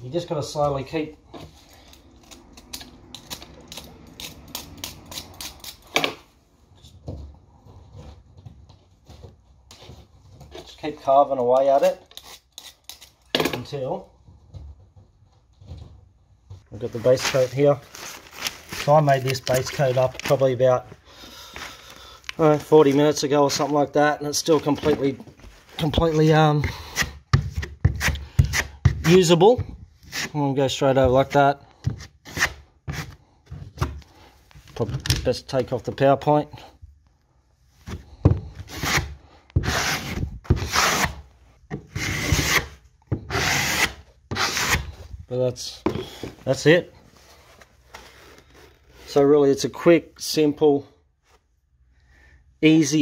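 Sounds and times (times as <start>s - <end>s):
knife scraping wet plaster: 11.8s - 13.2s, 38.7s - 41.3s, 43.3s - 44.9s
knife scraping plasterboard: 11.8s - 13.3s, 26.6s - 29.3s, 30.0s - 30.4s, 31.8s - 33.2s, 38.0s - 45.0s.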